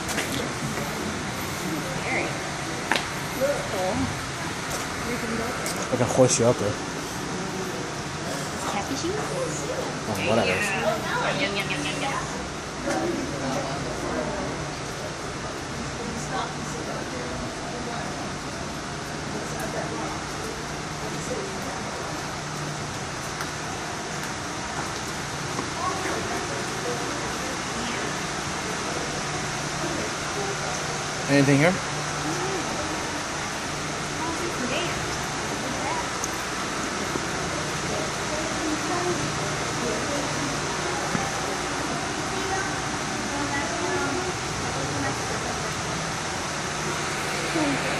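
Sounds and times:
faint distant voices: 0:00.0 - 0:47.9
rushing background noise: 0:00.0 - 0:47.9
low hum: 0:45.4 - 0:47.9.

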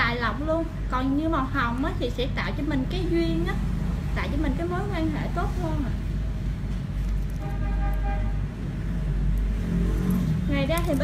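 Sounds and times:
road traffic rumble: 0:00.0 - 0:11.0
vehicle horn: 0:07.4 - 0:08.5.

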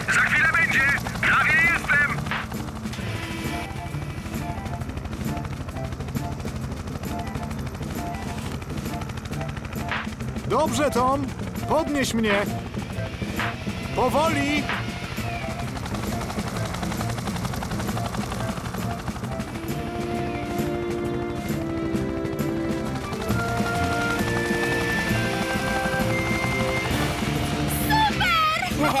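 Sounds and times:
helicopter rotor chopping: 0:00.0 - 0:29.0.

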